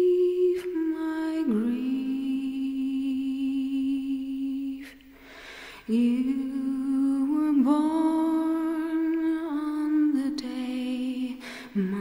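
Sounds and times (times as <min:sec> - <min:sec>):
woman singing long held notes: 0:00.0 - 0:05.1, 0:05.9 - 0:12.0.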